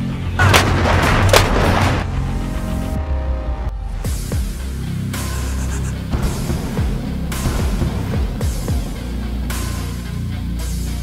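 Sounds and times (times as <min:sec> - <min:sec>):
sharp crack: 0:00.4 - 0:02.2
howitzer blast: 0:00.4 - 0:02.9
rumbling: 0:00.4 - 0:03.1.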